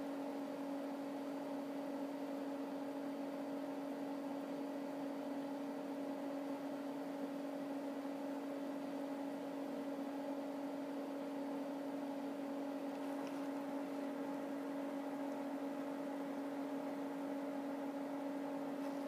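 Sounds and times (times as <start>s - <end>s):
steady hum: 0.0s - 19.0s.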